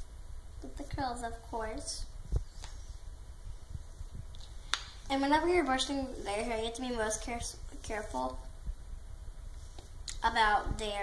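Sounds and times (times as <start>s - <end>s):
faint low rumble: 0.0s - 11.0s.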